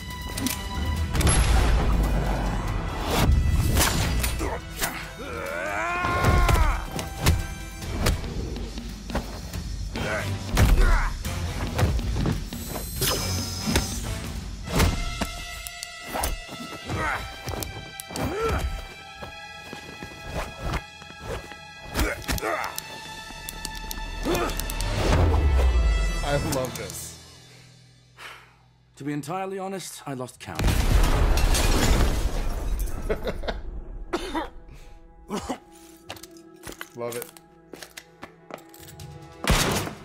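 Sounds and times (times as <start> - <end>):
background music: 0.0 - 40.0
man grunting in pain: 5.0 - 7.0, 24.2 - 24.6.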